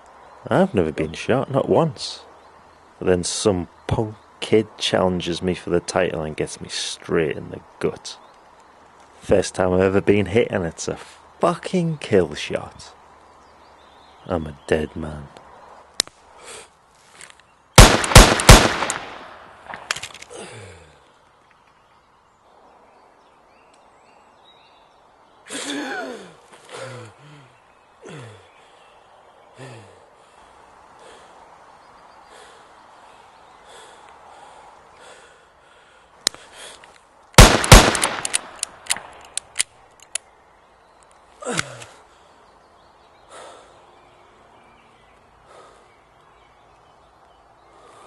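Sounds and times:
sharp clicks and cracks: 15.4s - 16.2s, 17.2s - 20.4s, 36.2s - 40.3s
gunshots with echo: 17.8s - 19.9s, 37.4s - 39.1s
man groaning: 25.5s - 27.4s.

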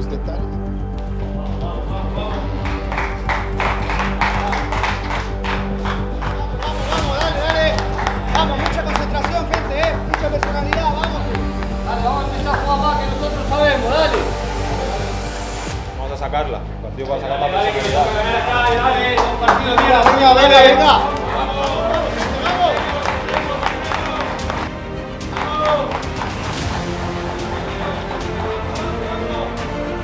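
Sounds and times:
background music: 0.0s - 30.0s
people clapping in rhythm: 0.9s - 14.5s, 18.8s - 29.9s.

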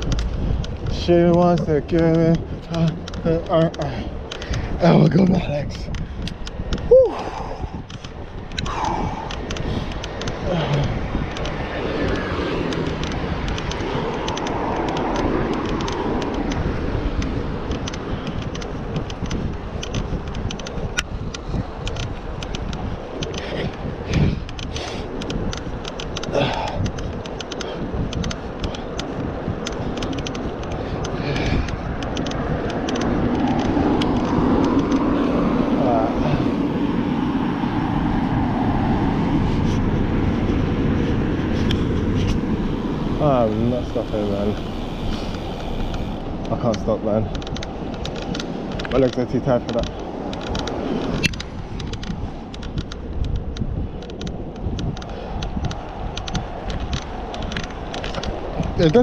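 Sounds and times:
motor traffic passing: 0.0s - 59.0s
wind rush on microphone: 0.0s - 59.0s.

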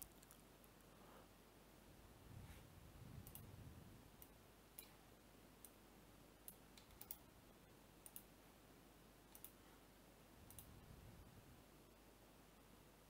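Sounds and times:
faint sharp clicks: 3.2s - 3.5s, 6.4s - 7.3s, 8.0s - 8.3s, 9.3s - 9.6s, 10.4s - 10.7s.

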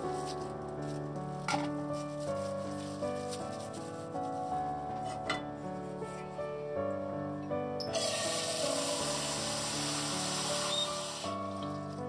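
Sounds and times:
water pouring into a sink: 7.9s - 12.0s.

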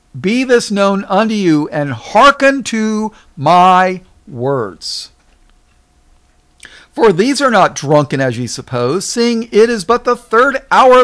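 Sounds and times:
thin steady hum: 0.0s - 11.0s
man speaking: 0.2s - 5.2s, 6.9s - 11.0s
man breathing: 6.6s - 7.0s.

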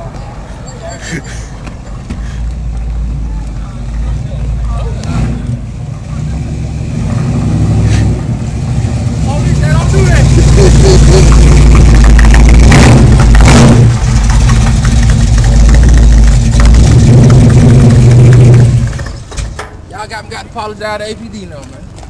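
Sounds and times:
car engine at high revs: 4.6s - 19.0s.

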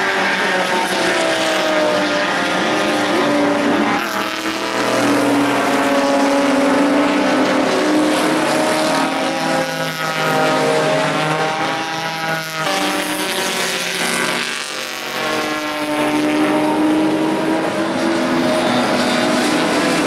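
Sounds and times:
race car engines accelerating: 0.0s - 20.0s.

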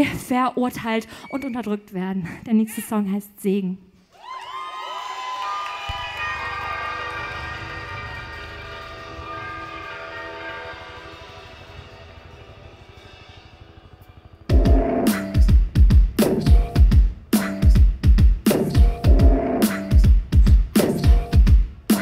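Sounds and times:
low throbbing pulse: 5.9s - 20.7s
electronic held tones: 14.5s - 15.3s.

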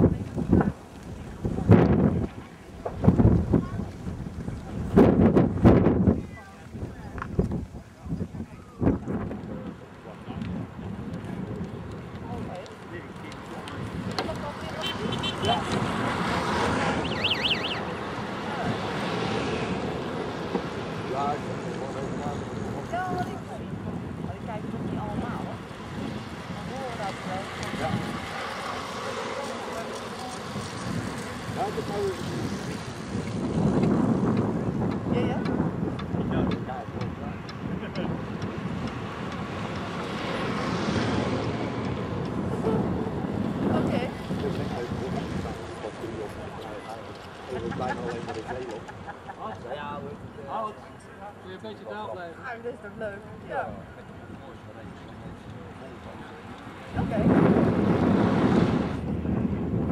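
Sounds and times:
wind buffeting microphone: 0.0s - 51.4s, 52.5s - 59.9s
indistinct voices talking: 0.0s - 58.3s.

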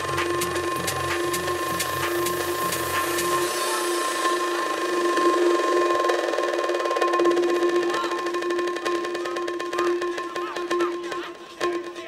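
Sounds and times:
held synth tone: 0.0s - 11.2s
fast ticking percussion: 0.0s - 12.0s.

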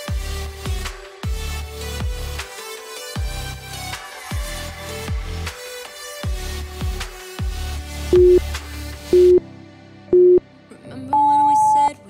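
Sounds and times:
background music: 0.0s - 12.0s
timer beeps: 8.2s - 8.4s, 9.2s - 9.4s, 10.2s - 10.4s, 11.1s - 11.9s.

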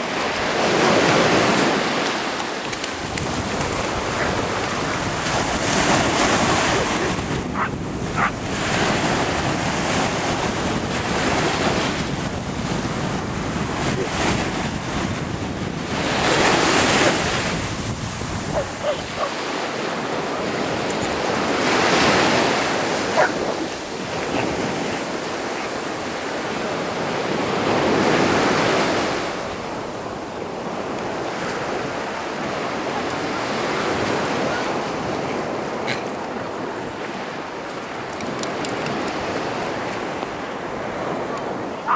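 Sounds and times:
wind buffeting microphone: 0.0s - 41.8s
ocean surf breaking: 0.0s - 41.9s.

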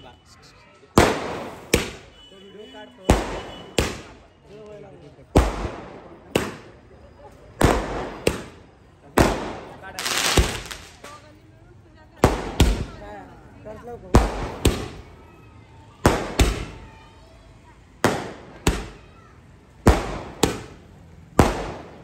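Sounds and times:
voices: 0.0s - 22.0s
firecracker crackling burst: 1.0s - 2.2s, 3.1s - 4.3s, 7.6s - 11.4s, 14.1s - 15.1s, 16.0s - 17.0s, 18.0s - 19.1s, 19.7s - 22.0s
firecrackers banging: 1.0s - 2.2s, 3.0s - 4.4s, 5.2s - 11.4s, 12.2s - 13.0s, 14.1s - 15.2s, 16.0s - 17.0s, 17.9s - 22.0s.

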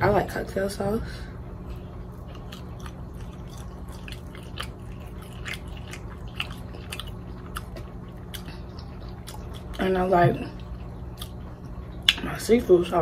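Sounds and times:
close chewing: 1.6s - 9.9s, 10.5s - 12.2s.

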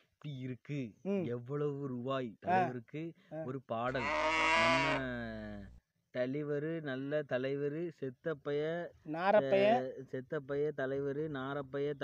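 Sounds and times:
person speaking: 0.3s - 5.8s, 8.9s - 11.4s
long sheep or goat bleat: 3.9s - 5.7s.

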